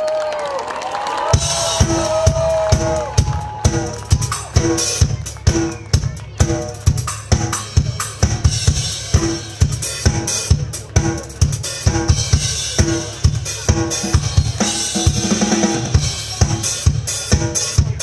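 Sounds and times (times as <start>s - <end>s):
drum kit playing: 1.3s - 18.0s.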